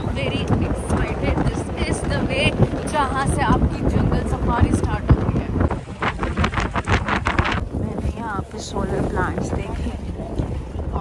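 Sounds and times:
jeep rumbling on dirt track: 0:00.0 - 0:08.3
wind buffeting microphone: 0:00.0 - 0:11.0.

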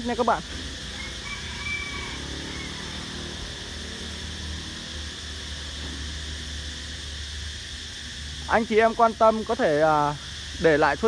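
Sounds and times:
high hiss: 0:00.0 - 0:11.0.

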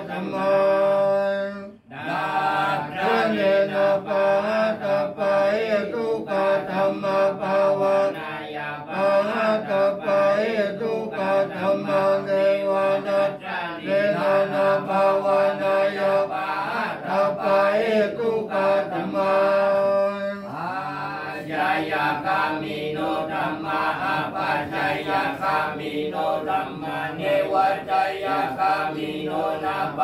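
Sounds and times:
monks chanting in monotone: 0:00.0 - 0:30.0.

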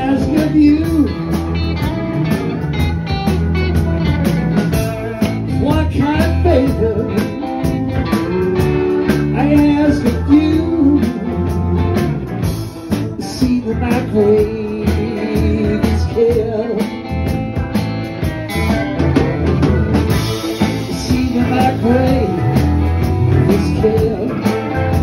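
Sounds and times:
bent-note guitar lead line: 0:00.0 - 0:25.0
blues band playing: 0:00.0 - 0:25.0.

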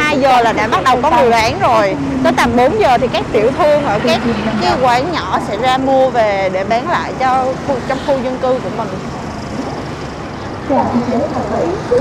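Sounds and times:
motorbike engine: 0:00.0 - 0:12.0.

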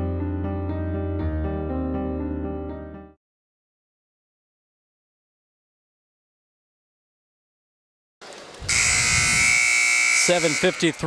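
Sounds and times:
buzzing arena horn: 0:08.7 - 0:11.0.

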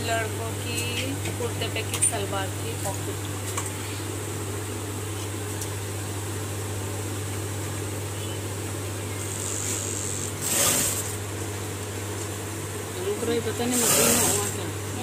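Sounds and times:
sewing machine motor humming: 0:09.2 - 0:11.3, 0:13.4 - 0:15.0.

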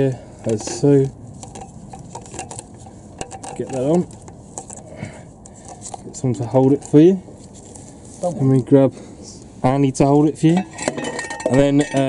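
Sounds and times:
rustling: 0:00.6 - 0:08.6.

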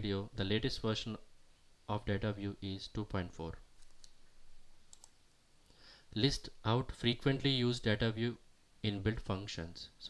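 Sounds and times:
room hiss: 0:00.0 - 0:10.0
computer mouse clicks: 0:03.8 - 0:04.2, 0:04.9 - 0:05.2.

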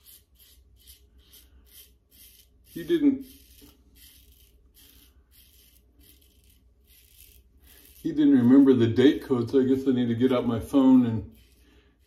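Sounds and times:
razor scraping stubble: 0:00.0 - 0:12.0.

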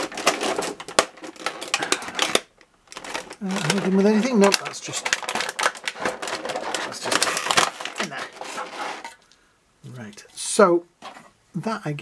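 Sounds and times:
plastic blister tray crackling: 0:00.0 - 0:09.2.

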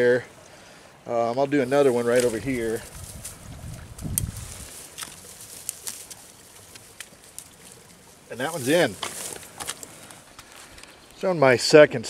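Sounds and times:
dry grass rustling and crackling: 0:01.4 - 0:11.5.

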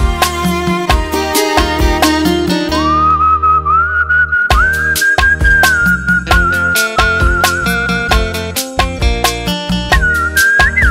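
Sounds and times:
person whistling a melody: 0:02.8 - 0:08.2, 0:09.9 - 0:10.9
percussion hits: 0:04.5 - 0:10.9.

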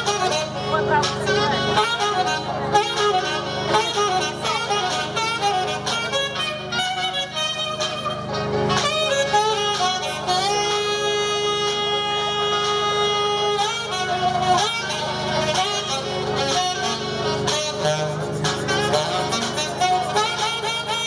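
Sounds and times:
backing music: 0:00.0 - 0:21.0
saxophone playing: 0:00.0 - 0:21.0.

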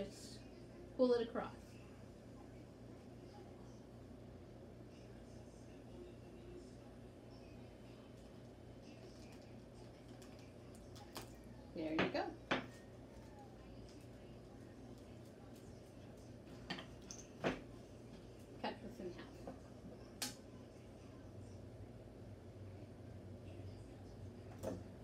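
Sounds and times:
low room hum: 0:00.0 - 0:25.0
tools knocking and clinking on a table: 0:12.0 - 0:12.8, 0:16.6 - 0:17.6.

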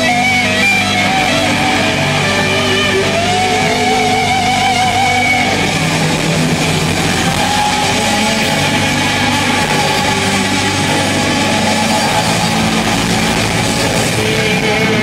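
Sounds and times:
distorted electric guitar: 0:00.0 - 0:15.0.

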